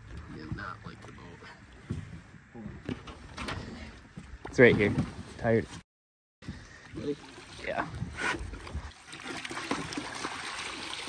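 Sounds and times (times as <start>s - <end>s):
water splashing and trickling: 6.7s - 11.0s.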